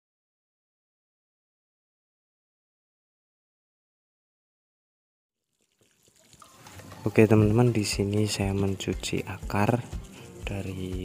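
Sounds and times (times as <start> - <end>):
hose water splashing over roots: 5.5 - 11.0.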